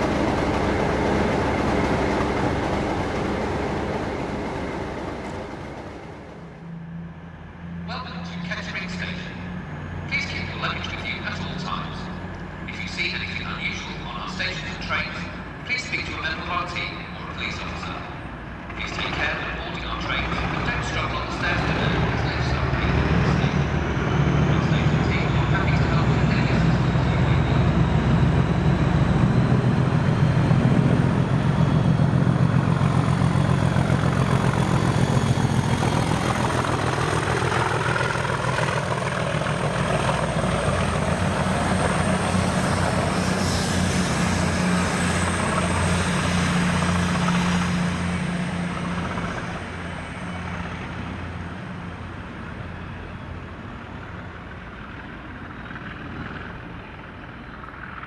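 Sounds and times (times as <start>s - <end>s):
diesel locomotive engine: 0.0s - 58.0s
wheel and rail noise: 0.0s - 58.0s.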